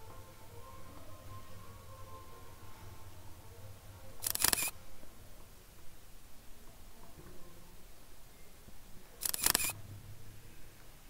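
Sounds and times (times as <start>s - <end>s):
faint low hum: 0.0s - 11.0s
rapid sharp clicks: 4.2s - 4.7s, 9.2s - 9.8s.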